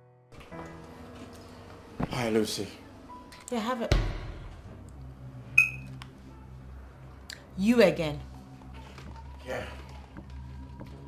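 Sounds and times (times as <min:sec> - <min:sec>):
short sharp high tone: 0:05.6 - 0:05.9.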